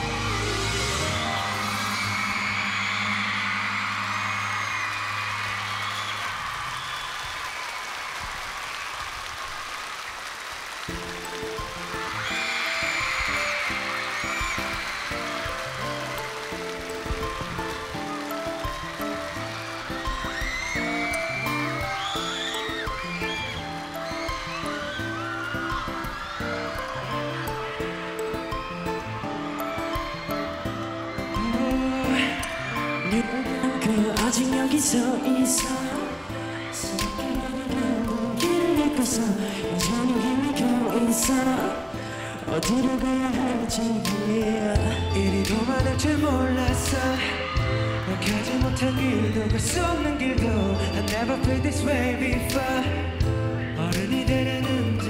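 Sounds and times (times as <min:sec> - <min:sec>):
pop song chord: 0:00.0 - 0:04.7, 0:26.8 - 0:55.0
crowd screaming and cheering: 0:00.0 - 0:55.0.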